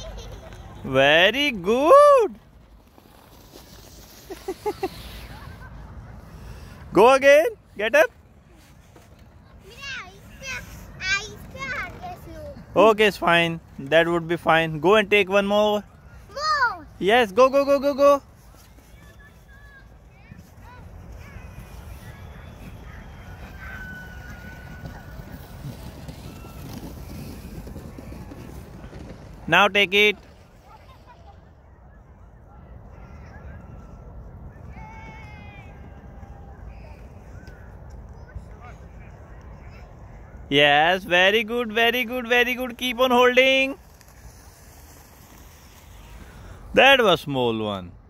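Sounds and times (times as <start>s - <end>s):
wind rumbling on microphone: 20.6s - 29.5s.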